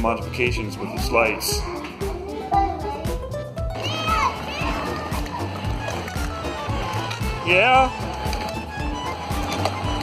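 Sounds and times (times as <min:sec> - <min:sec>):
background music with steady beat: 0:00.0 - 0:10.0
child calling out: 0:03.8 - 0:05.2.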